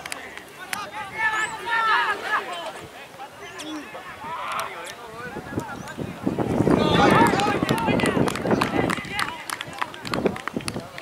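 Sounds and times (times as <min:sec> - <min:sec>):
players shouting: 0:00.0 - 0:10.4.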